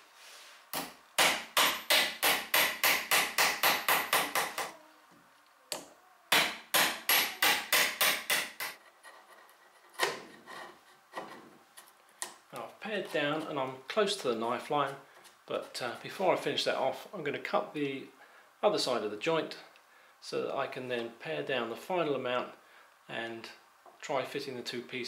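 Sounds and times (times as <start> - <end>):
mallet striking a chisel: 0.8 - 4.7, 6.3 - 8.8.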